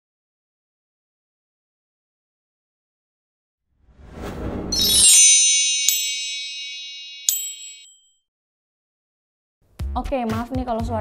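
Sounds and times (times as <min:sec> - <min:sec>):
shimmering logo chime: 0:04.7 - 0:08.1
sparkling tinkles: 0:04.7 - 0:08.1.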